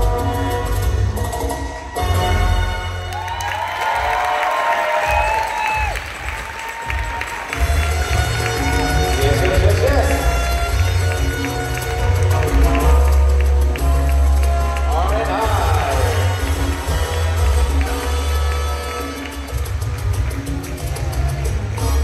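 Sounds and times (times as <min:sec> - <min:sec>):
audience cheering and applauding: 0:02.8 - 0:22.0
dance music with heavy bass: 0:07.6 - 0:22.0.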